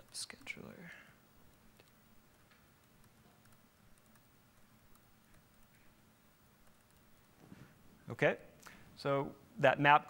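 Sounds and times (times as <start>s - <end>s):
computer keyboard clicks: 1.5s - 5.8s, 6.6s - 7.1s.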